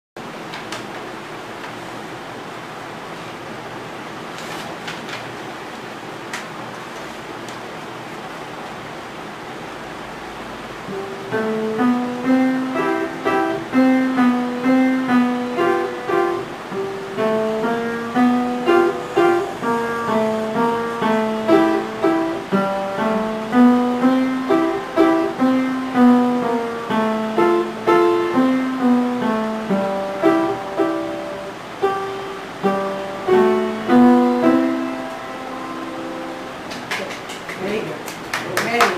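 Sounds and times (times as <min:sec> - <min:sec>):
upright piano classical piece: 0:10.4 - 0:38.8.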